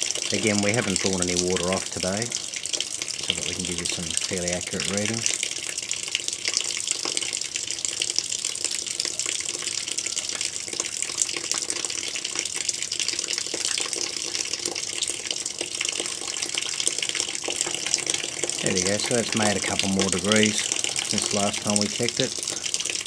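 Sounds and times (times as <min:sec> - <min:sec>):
water running from a valve: 0:00.0 - 0:23.0.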